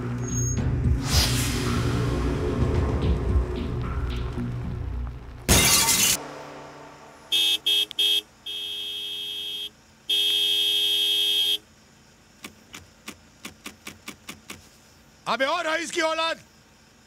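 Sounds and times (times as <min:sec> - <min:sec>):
dramatic background music: 0:00.0 - 0:07.5
loud sharp burst of noise: 0:05.5 - 0:07.8
car horn honking: 0:06.2 - 0:11.7.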